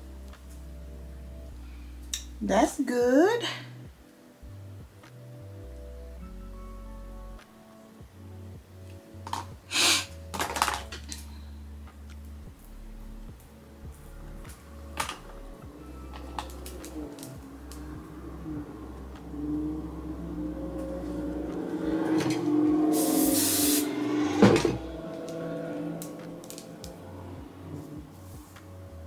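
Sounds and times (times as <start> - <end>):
soft background music: 0.0 - 29.0
aerosol spray hiss: 22.8 - 24.4.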